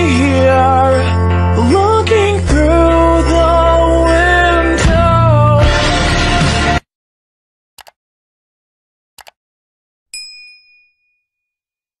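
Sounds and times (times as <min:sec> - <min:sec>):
click: 0:09.2 - 0:09.4
bright bell ding: 0:10.1 - 0:11.6.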